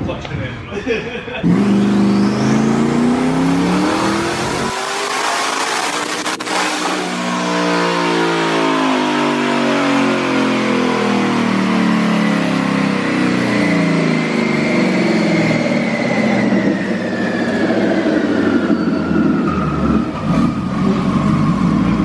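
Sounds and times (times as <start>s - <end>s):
engine revving on a dyno: 1.4s - 22.0s
turbo whine: 1.4s - 22.0s.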